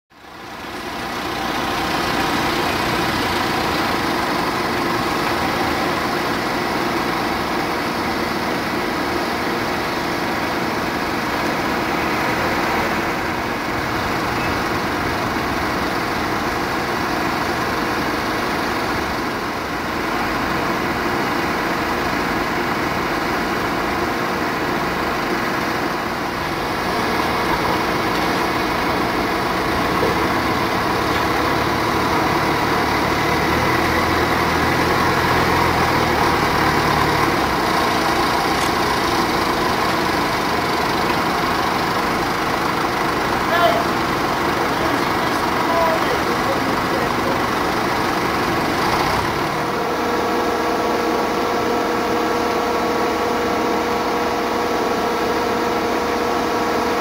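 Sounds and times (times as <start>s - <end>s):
engine idling: 0.1s - 57.0s.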